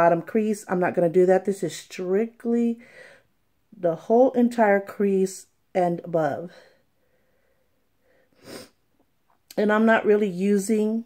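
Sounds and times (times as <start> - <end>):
woman speaking: 0.0 - 2.9, 3.7 - 6.8, 9.5 - 11.0
woman's sharp breath: 2.8 - 3.3, 6.6 - 8.8.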